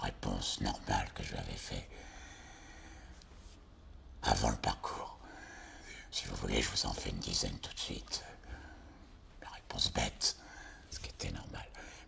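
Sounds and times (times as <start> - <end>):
man speaking softly: 0.0 - 2.0, 4.2 - 5.2, 6.1 - 8.4, 9.4 - 12.0.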